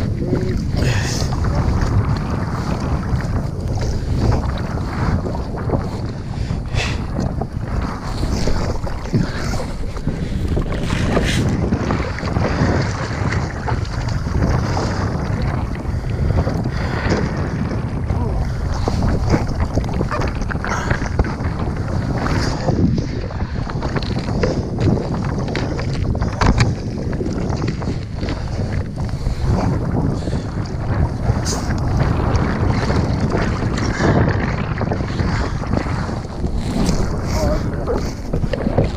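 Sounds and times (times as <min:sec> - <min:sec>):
small waves lapping and splashing: 0:00.0 - 0:38.9
wind buffeting microphone: 0:00.0 - 0:38.9.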